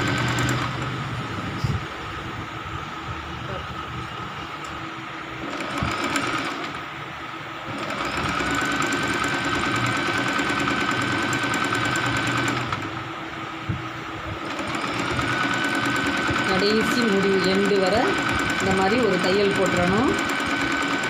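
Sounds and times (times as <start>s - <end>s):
sewing machine stitching: 0.0s - 1.0s, 5.4s - 6.8s, 7.7s - 13.0s, 14.4s - 21.0s.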